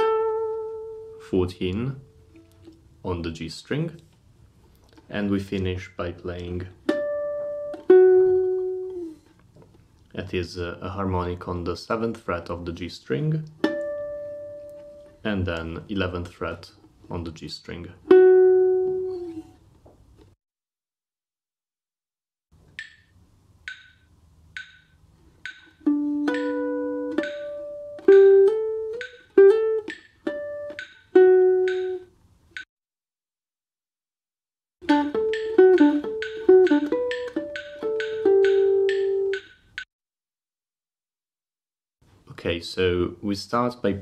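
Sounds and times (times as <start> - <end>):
guitar notes and harmonics: 0.0 - 1.2, 6.9 - 9.1, 18.1 - 19.5, 25.8 - 32.1, 34.8 - 39.4
metronome click: 22.7 - 32.7, 34.9 - 39.9.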